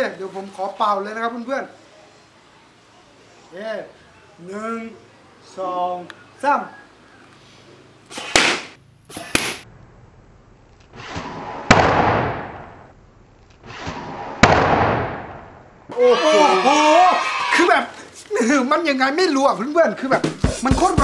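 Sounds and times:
loud sharp cracks: 8.1 - 9.7, 10.8 - 12.9, 13.5 - 15.6.

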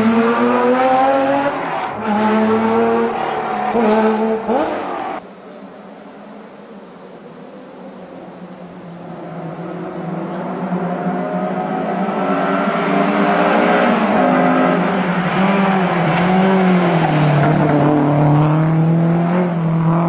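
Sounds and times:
rally car engine revving: 0.0 - 5.2, 9.6 - 20.0.

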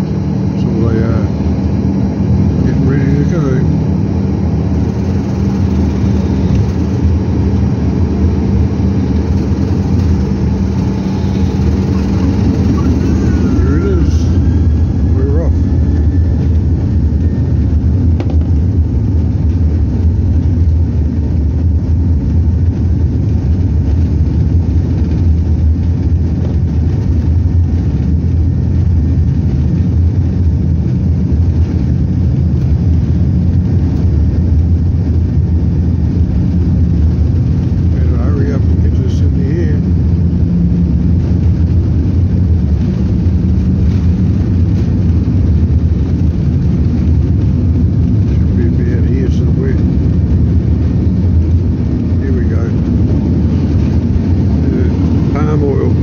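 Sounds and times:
jet engines at takeoff power: 0.0 - 56.0
wheels rumbling on runway: 0.0 - 56.0.

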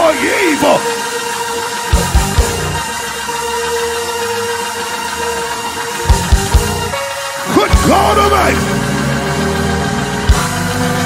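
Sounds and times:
church organ chord: 0.0 - 11.0.

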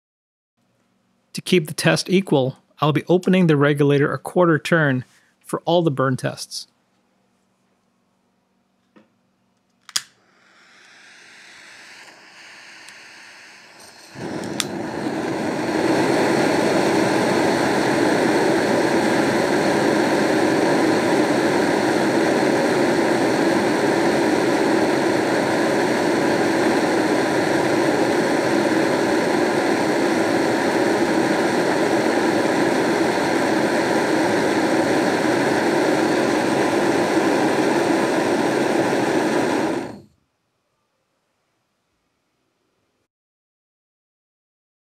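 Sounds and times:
faint gas hiss: 1.3 - 6.8, 9.9 - 41.6
sharp click: 9.8 - 10.2
gas burner flame roaring: 9.9 - 40.1.

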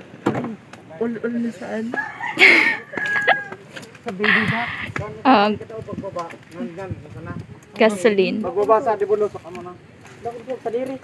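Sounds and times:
people talking: 0.9 - 11.0
rooster crowing: 1.8 - 3.8.

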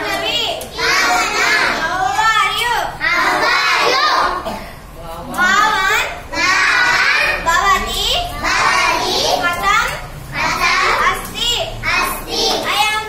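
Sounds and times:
children reciting phrases: 0.0 - 4.7, 5.3 - 13.0.

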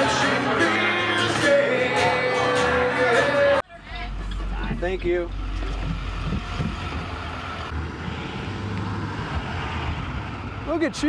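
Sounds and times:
bus engine rumbling: 0.0 - 11.0.

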